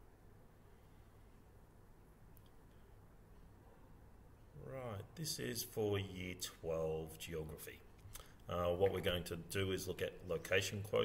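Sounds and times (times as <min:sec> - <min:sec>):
faint microphone hum: 0:00.0 - 0:11.0.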